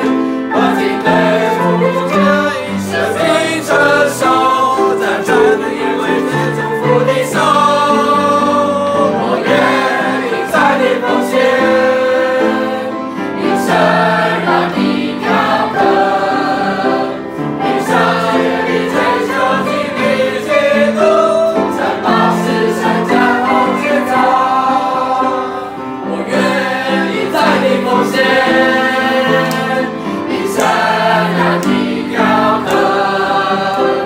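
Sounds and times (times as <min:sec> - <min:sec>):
group singing a hymn: 0:00.0 - 0:34.0.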